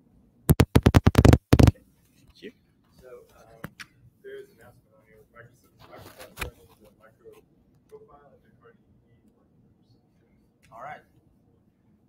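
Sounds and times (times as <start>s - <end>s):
rapid sharp clicks: 0.5s - 1.7s.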